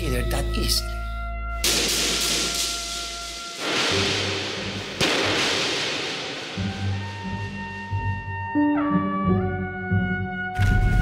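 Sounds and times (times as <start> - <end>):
dramatic music score: 0.0 - 11.0
pistol shots echoing: 1.6 - 6.7.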